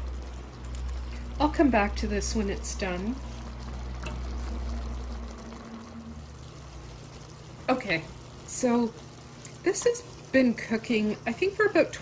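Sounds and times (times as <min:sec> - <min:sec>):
low hum: 0:00.0 - 0:09.5
pan bubbling: 0:00.0 - 0:12.0.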